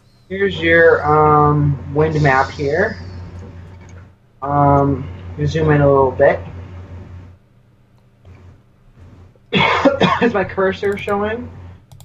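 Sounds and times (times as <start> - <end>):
faint low hum: 0.0 - 12.0
person coughing: 9.6 - 10.4.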